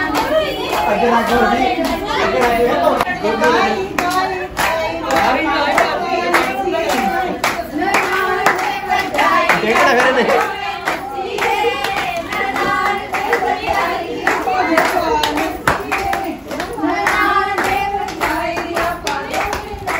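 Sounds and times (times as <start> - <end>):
voices singing along: 0.0 - 19.9
women clapping in rhythm: 0.0 - 19.9.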